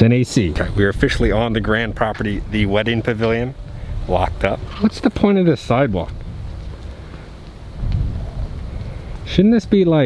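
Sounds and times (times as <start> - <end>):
wind buffeting microphone: 0.5 - 10.0.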